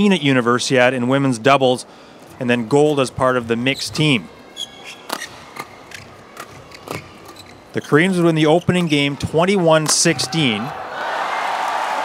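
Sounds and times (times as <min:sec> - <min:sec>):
low arena background noise: 0:00.0 - 0:12.0
rackets hitting shuttlecock: 0:05.0 - 0:07.4, 0:09.8 - 0:10.4.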